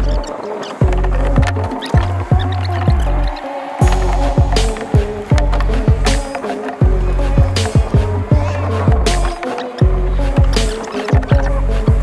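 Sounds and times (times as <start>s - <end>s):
sustained bass line: 0.0s - 12.0s
deep kick drum: 0.8s - 12.0s.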